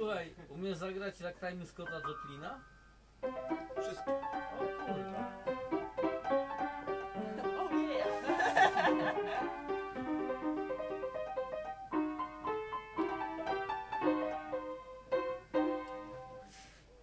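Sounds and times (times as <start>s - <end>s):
solo piano tune: 1.8s - 16.5s.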